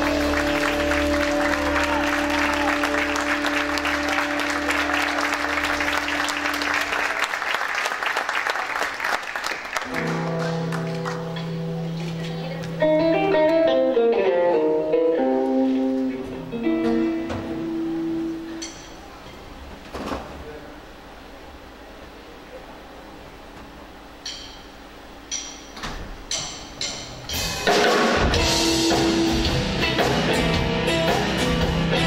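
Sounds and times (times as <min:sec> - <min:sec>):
live band chord: 0:00.0 - 0:07.3, 0:09.8 - 0:19.0, 0:26.8 - 0:32.0
audience applause: 0:00.0 - 0:11.5
guitar playing single notes: 0:09.9 - 0:19.2.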